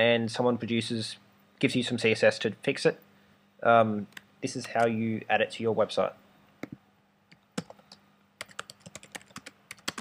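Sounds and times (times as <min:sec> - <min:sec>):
computer keyboard typing: 0:07.3 - 0:10.0.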